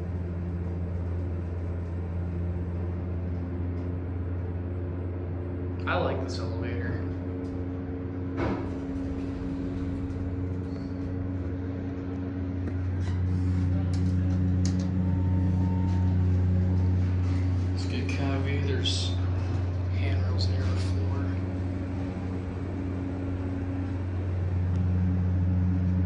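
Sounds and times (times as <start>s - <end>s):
elevator hum: 0.0s - 26.0s.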